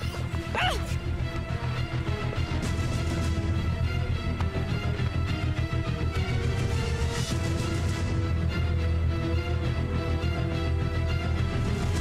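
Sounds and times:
dramatic music with low throbbing beat: 0.0 - 12.0.

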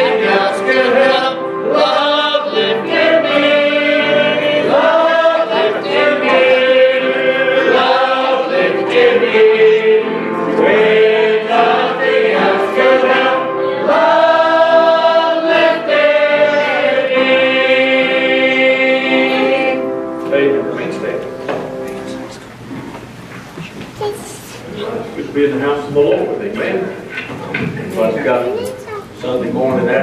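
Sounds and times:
congregation singing a hymn: 0.0 - 22.6.

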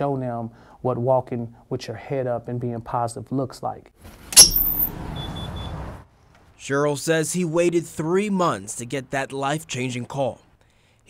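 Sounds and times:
outdoor traffic noise: 4.0 - 11.0
faint high beeps: 4.4 - 5.8.

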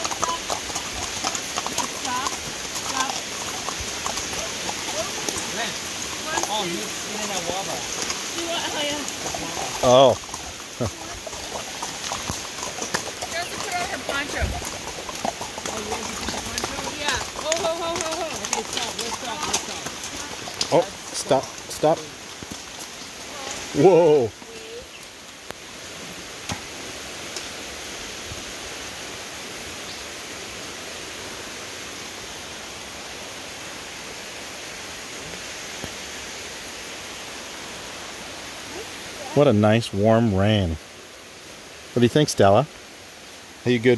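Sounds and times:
hooves clip-clopping on gravel: 0.0 - 27.6
rain falling: 0.0 - 43.9.

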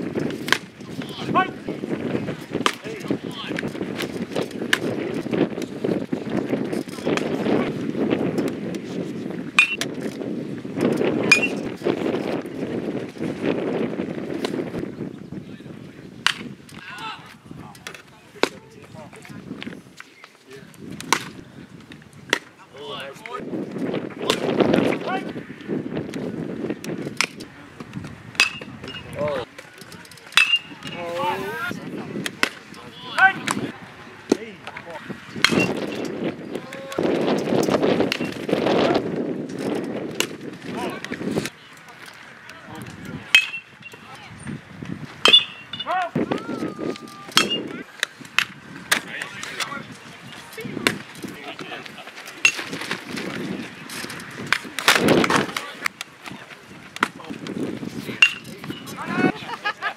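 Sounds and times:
people chattering and calling: 0.0 - 7.9, 14.8 - 59.9
voices of players and spectators: 0.0 - 59.9.

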